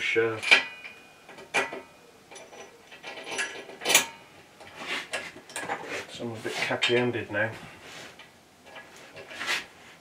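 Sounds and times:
metallic clinks and knocks: 0:00.3 - 0:05.9.

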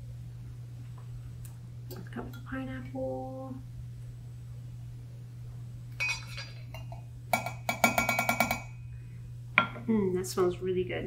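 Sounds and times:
low electrical hum: 0:00.0 - 0:11.0
glass clink: 0:06.0 - 0:08.8.

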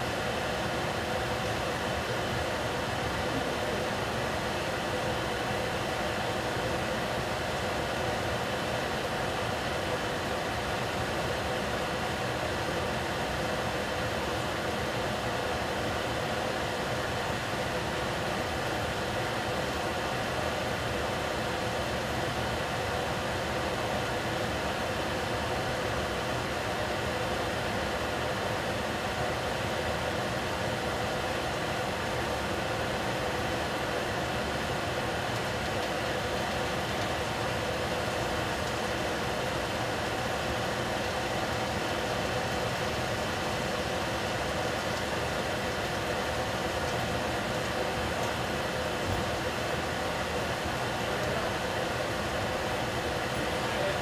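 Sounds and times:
pot cooking on stove: 0:00.1 - 0:54.0.

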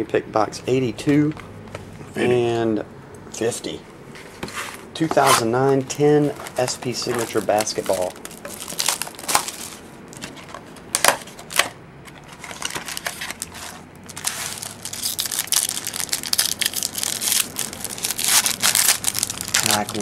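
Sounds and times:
wrapper crinkling and tearing: 0:06.4 - 0:11.7, 0:12.3 - 0:20.0.

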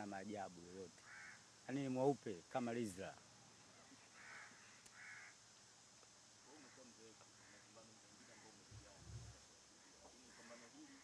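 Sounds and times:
crow cawing: 0:01.0 - 0:01.5, 0:04.1 - 0:05.4, 0:06.5 - 0:08.6, 0:09.8 - 0:11.0.

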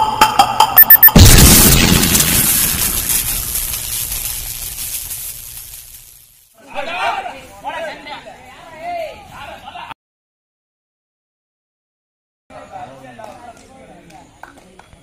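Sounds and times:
loud boom with shimmering tail: 0:00.8 - 0:04.4.

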